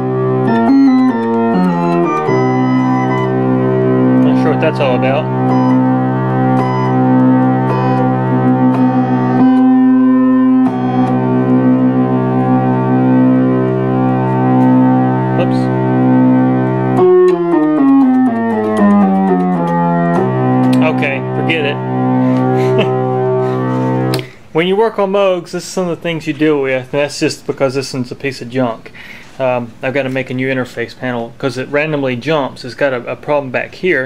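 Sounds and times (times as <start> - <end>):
synthesizer sustained pulsing note: 0.0 - 24.1.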